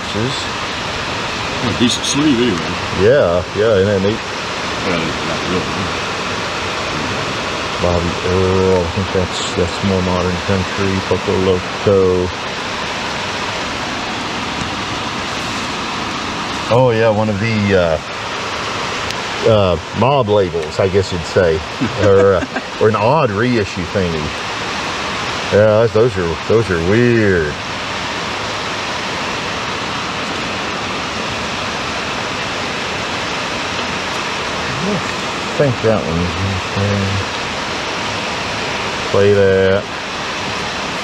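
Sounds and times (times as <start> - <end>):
rain pouring: 0.0 - 41.0.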